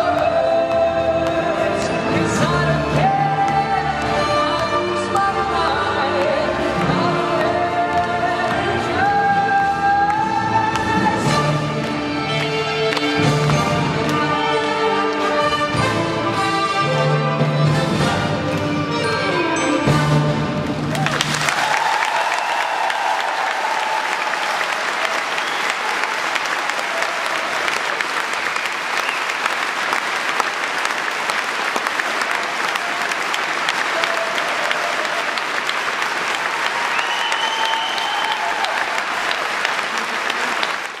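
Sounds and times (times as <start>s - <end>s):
audience applauding: 11.8s - 15.4s, 20.7s - 41.0s.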